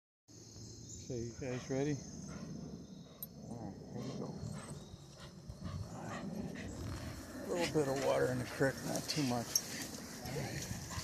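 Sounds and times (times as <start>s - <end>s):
wind: 0.3s - 11.0s
dogs breathing: 1.4s - 11.0s.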